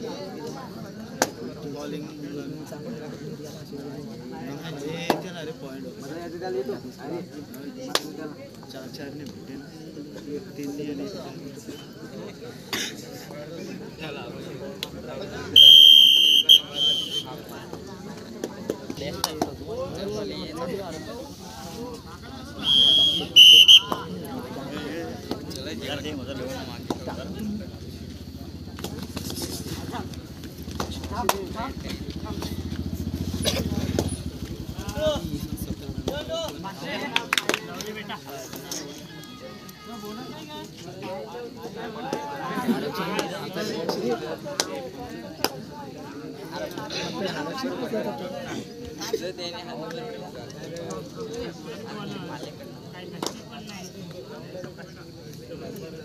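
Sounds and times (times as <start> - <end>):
voices calling out: 15.2 - 36.0.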